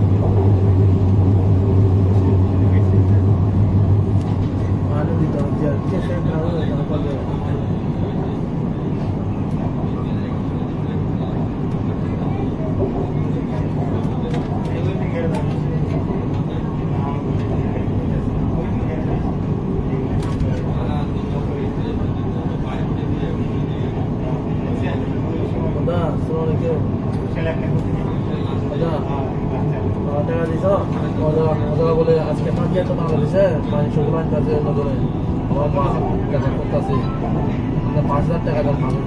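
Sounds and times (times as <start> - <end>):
metro train rumble from inside: 0.0 - 39.0.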